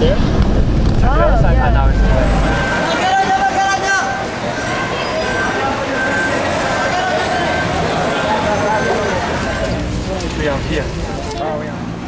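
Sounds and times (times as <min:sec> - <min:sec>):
street traffic: 0:00.0 - 0:12.0
people talking: 0:01.0 - 0:11.9.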